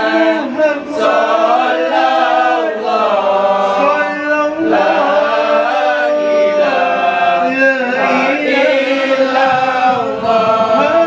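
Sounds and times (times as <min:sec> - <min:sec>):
men chanting in unison: 0:00.0 - 0:11.0
hand-beaten frame drums: 0:08.0 - 0:11.0.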